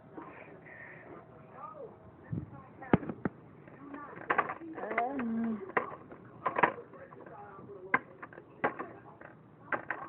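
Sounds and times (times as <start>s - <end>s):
plastic toys clicking: 3.9s - 10.0s.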